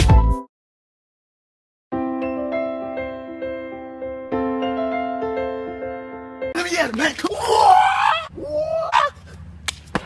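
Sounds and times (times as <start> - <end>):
man yelling hoarsely: 7.1 - 9.2.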